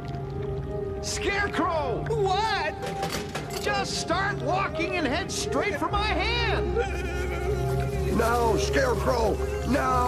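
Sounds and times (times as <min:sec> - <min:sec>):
background music held tones: 0:00.0 - 0:10.0.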